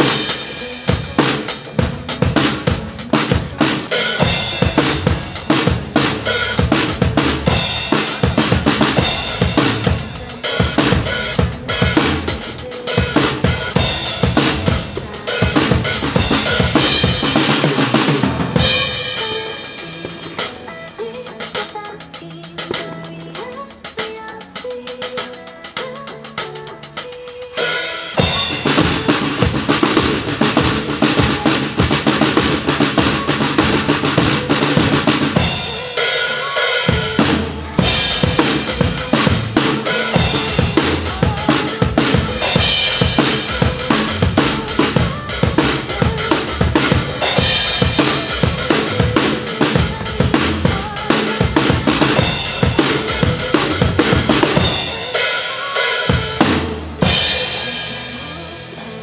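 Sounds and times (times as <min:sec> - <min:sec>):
cymbals: 0:00.0 - 0:21.0
acoustic drum kit playing: 0:00.0 - 0:59.0
backing music: 0:00.0 - 0:59.0.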